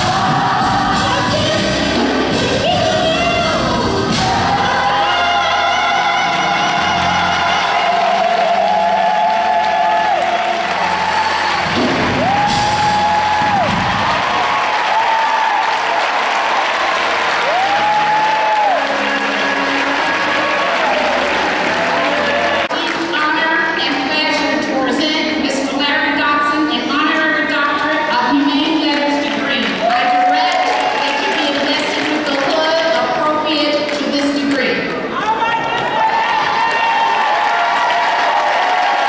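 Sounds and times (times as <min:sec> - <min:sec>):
bass line: 0:00.0 - 0:08.1
choir singing: 0:00.0 - 0:09.5
drums: 0:00.0 - 0:15.9
piano: 0:00.0 - 0:23.0.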